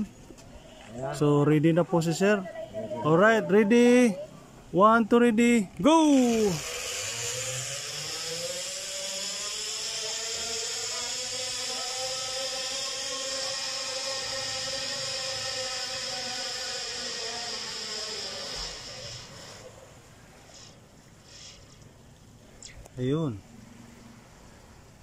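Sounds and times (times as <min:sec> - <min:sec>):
zip line trolley whine: 0:05.7 - 0:21.9.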